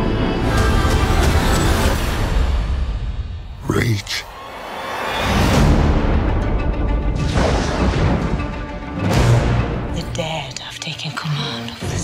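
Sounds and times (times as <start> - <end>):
dark orchestral trailer music: 0.0 - 12.0
person whispering: 3.6 - 4.2.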